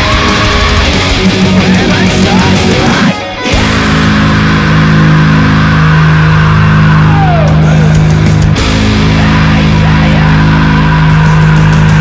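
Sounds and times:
distorted electric guitar chord: 0:00.0 - 0:12.0.

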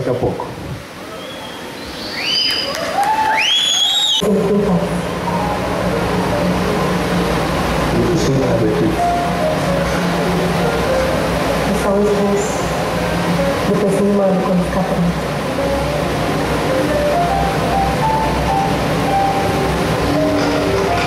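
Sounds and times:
rising whistle-like tones: 0:01.1 - 0:04.2
steady low hum: 0:04.2 - 0:21.0.

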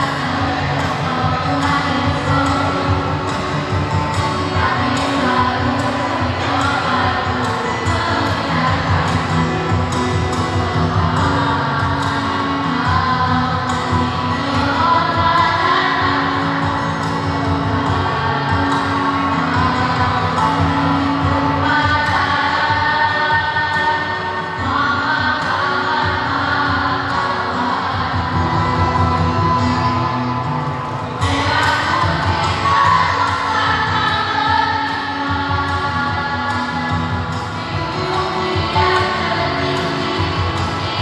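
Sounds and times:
vocal group singing in parts: 0:00.0 - 0:41.0.

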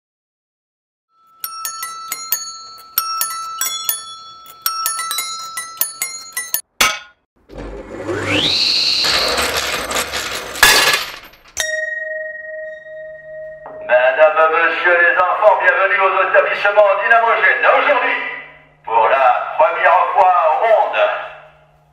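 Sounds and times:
metallic bell-like chimes: 0:01.2 - 0:06.6, 0:11.6 - 0:13.9
table saw whining: 0:07.4 - 0:11.2
steady held tone: 0:11.6 - 0:14.8.

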